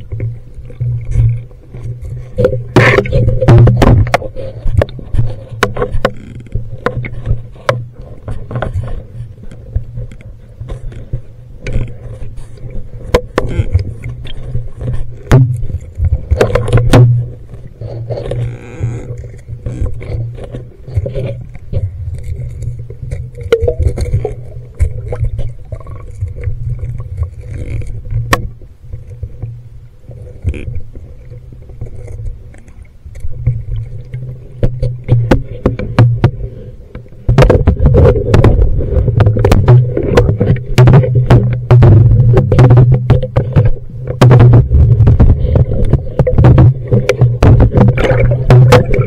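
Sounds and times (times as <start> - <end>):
low underwater rumble: 0.0 - 49.0
underwater camera housing knocking: 37.3 - 49.0.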